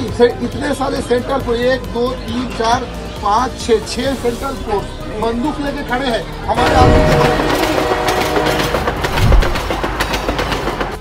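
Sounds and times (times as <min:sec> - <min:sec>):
train wheels clickety-clack: 0:06.6 - 0:11.0.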